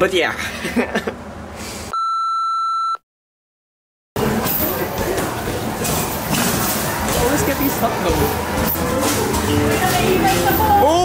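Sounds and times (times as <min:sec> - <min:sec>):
person laughing: 0:00.4 - 0:01.2
room noise: 0:04.2 - 0:11.0.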